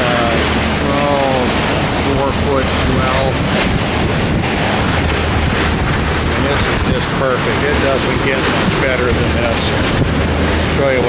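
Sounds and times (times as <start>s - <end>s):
boat engine hum: 0.0s - 11.0s
water rushing along hull: 0.0s - 11.0s
wind buffeting microphone: 0.0s - 11.0s.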